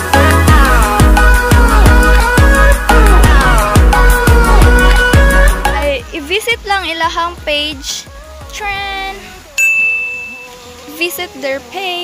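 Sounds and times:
high steady tone: 9.6s - 10.6s.

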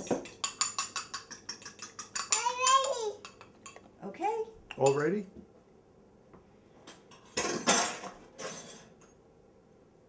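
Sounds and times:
fork clinking against glass jar: 0.2s - 3.8s, 4.7s - 5.1s
child speaking: 2.3s - 3.2s.

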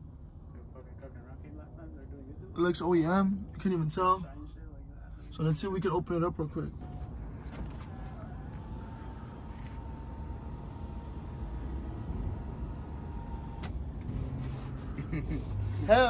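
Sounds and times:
sunroof motor whining: 6.8s - 14.9s.

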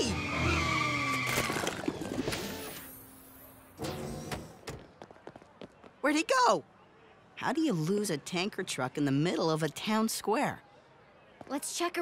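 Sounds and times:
cartoon car engine: 0.0s - 2.8s.

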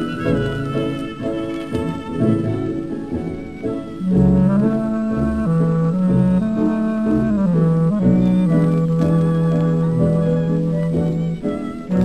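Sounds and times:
tango orchestra playing: 0.0s - 12.0s.

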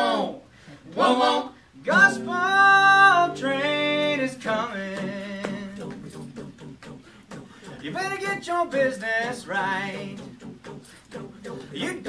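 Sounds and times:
rhythmic vocal chugging: 1.0s - 12.0s.

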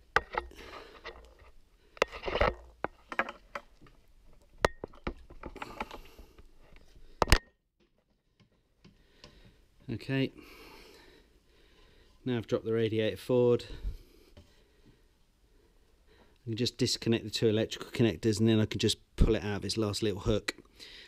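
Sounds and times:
clicks and knocks of parts: 0.0s - 9.5s.

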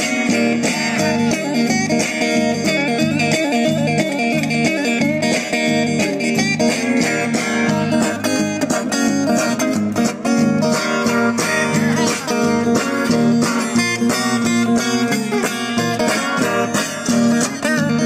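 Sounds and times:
acoustic guitar strummed: 0.0s - 18.0s.

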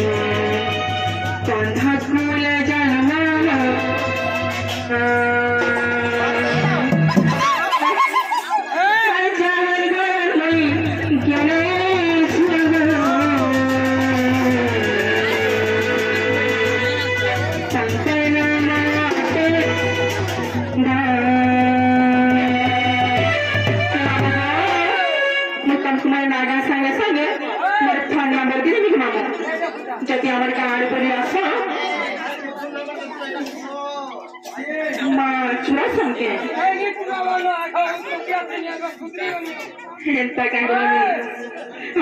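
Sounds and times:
instrumental accompaniment: 0.0s - 8.8s, 10.4s - 26.6s
voices chattering: 0.0s - 22.6s, 24.4s - 42.0s
folk song over loudspeaker: 0.0s - 32.0s.

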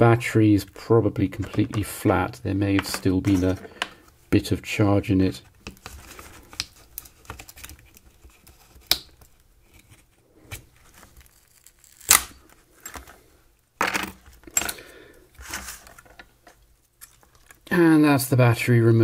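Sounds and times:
adhesive tearing: 10.9s - 12.5s.

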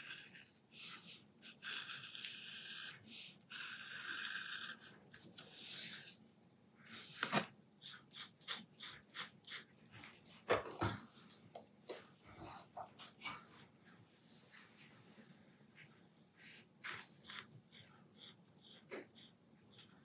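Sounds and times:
pen nib scratching on paper: 0.0s - 6.2s, 7.8s - 9.9s, 16.8s - 20.0s.

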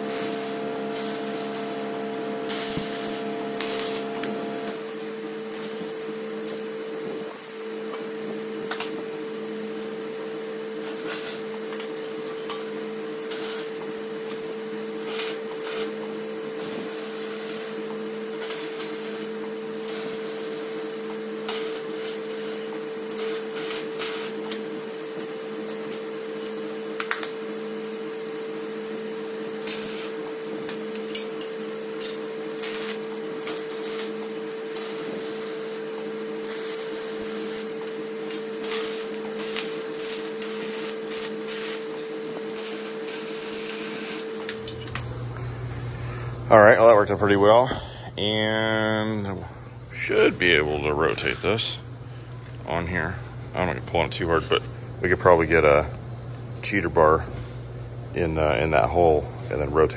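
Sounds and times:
welder crackle and clicks: 0.0s - 6.6s, 10.8s - 14.4s, 15.0s - 27.4s, 29.6s - 45.5s
welder steady hum: 0.0s - 59.9s.

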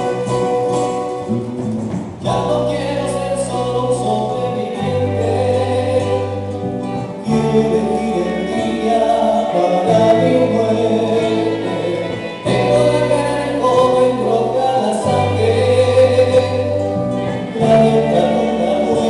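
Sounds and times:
electric bass: 0.0s - 19.0s
strummed charango and guitar: 0.0s - 19.0s
voices singing together: 2.2s - 19.0s.

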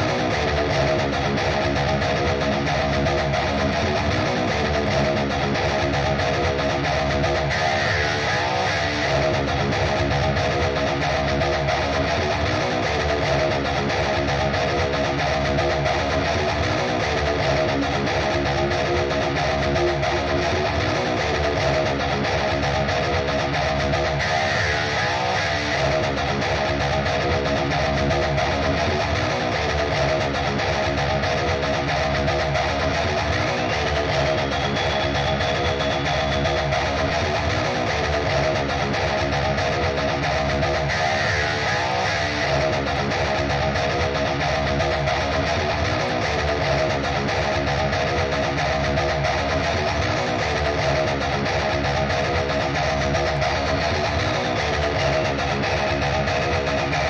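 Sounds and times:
electric guitar riff: 0.0s - 57.0s.

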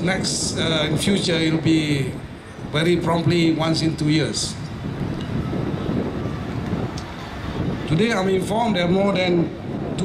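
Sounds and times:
outdoor gathering rumble: 0.0s - 10.0s.

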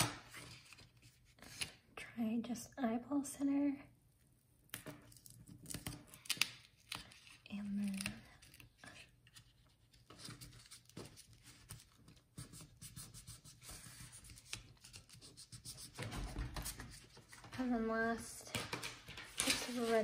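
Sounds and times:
paper rustling and scraping: 18.7s - 20.0s.

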